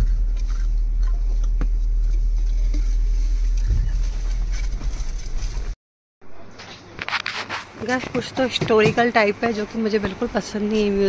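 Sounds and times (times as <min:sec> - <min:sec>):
engine and tyres rumbling: 0:00.0 - 0:05.8.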